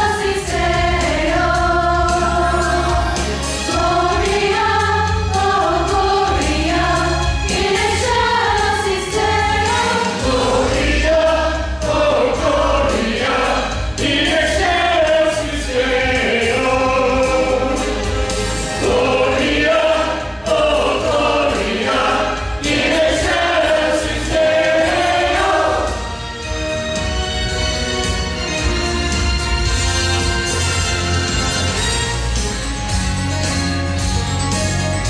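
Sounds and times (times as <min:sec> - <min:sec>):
church choir singing: 0:00.0 - 0:26.2
instrumental accompaniment with bass: 0:00.0 - 0:35.0.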